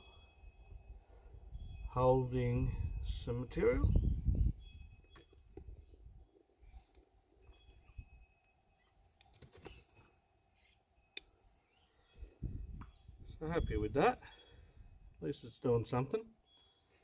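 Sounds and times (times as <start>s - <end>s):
faint high chirps: 3.8s - 14.9s.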